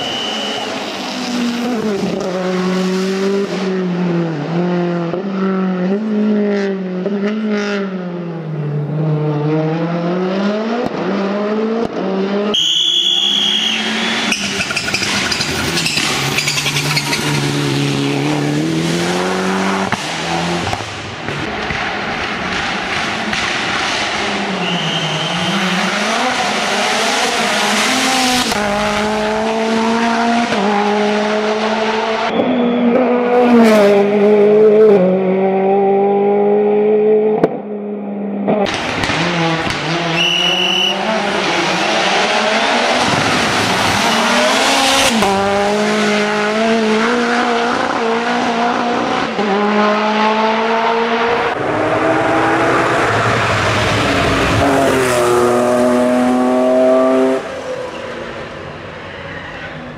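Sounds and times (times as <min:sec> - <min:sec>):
tyre squeals: 0:00.0 - 0:00.9, 0:12.6 - 0:17.5, 0:24.5 - 0:25.9
race car engines revving: 0:00.0 - 0:59.9.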